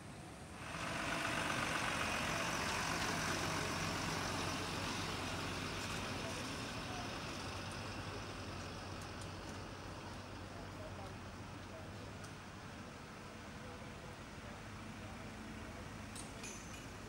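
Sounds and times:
road and tyre noise: 0.0s - 17.0s
diesel engine of passing lorry: 0.2s - 16.2s.

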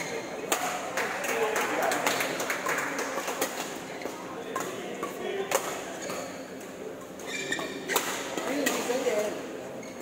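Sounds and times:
echoing sports hall noise: 0.0s - 10.0s
racket hitting shuttlecock: 7.6s - 8.9s.

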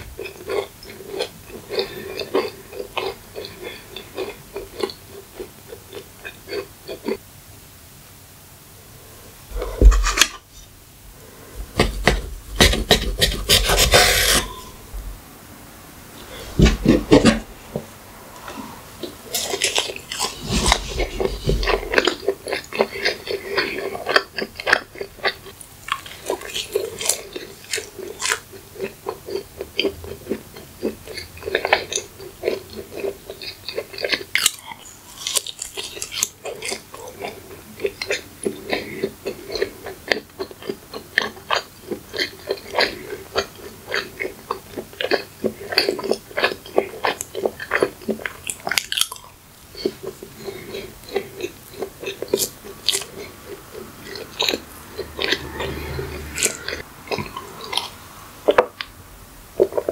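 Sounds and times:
biting and chewing muffin: 0.0s - 7.2s, 19.0s - 58.9s.

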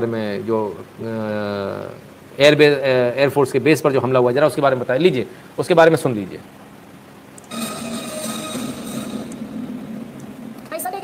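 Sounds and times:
helicopter turbine engines whining: 7.4s - 11.0s.

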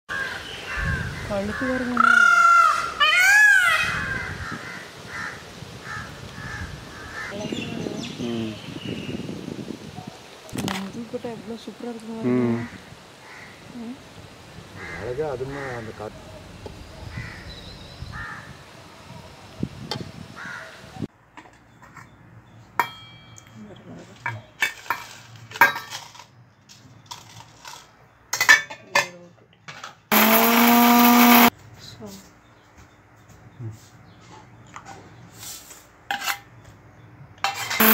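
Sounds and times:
peafowl calling: 0.1s - 7.5s
mixer grinder running: 30.1s - 31.5s.

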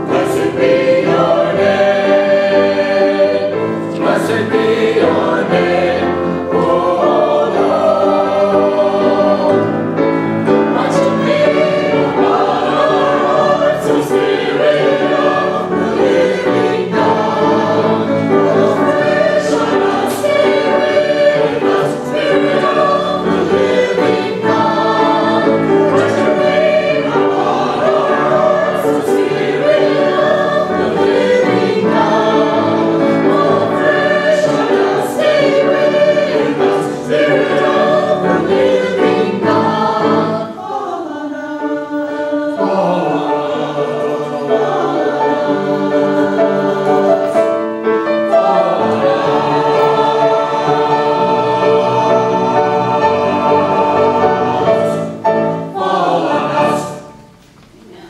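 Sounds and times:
church choir singing: 0.0s - 58.0s.

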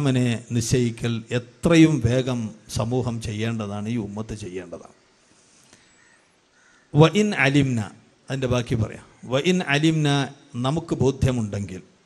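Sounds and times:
man talking: 0.0s - 5.0s, 7.0s - 12.0s
faint bird call: 4.8s - 7.0s.

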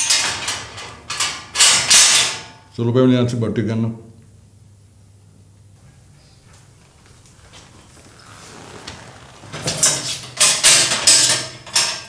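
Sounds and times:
metal bolt and gate scraping: 9.0s - 12.0s.

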